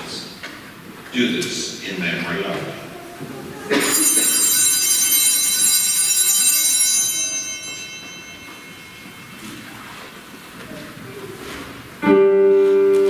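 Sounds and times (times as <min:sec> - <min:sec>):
small bells ringing: 0:03.7 - 0:10.6.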